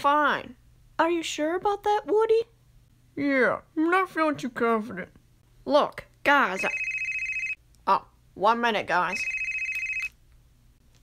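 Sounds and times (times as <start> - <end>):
telephone ringing: 6.6 - 7.6, 9.1 - 10.2.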